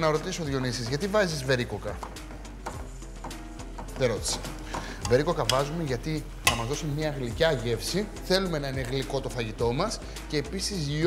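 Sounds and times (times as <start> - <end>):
soft background music: 0.0 - 11.0
metal spoon stirring in a pot: 2.1 - 6.9.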